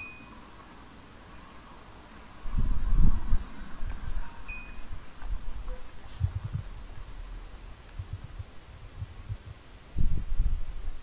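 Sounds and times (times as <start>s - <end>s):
short high beep: 0.0s - 0.4s, 4.5s - 4.9s
wind rumbling on microphone: 1.9s - 11.0s.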